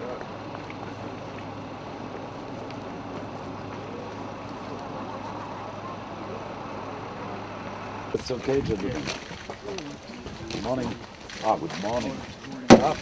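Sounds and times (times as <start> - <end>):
faint voices: 0.0 - 13.0
vehicle engines humming: 0.0 - 13.0.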